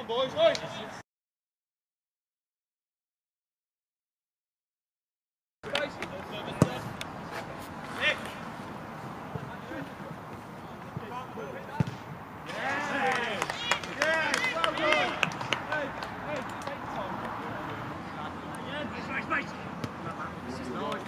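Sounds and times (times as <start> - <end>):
football being kicked: 6.6 - 6.8, 11.7 - 12.1
men shouting and cheering: 12.4 - 18.0.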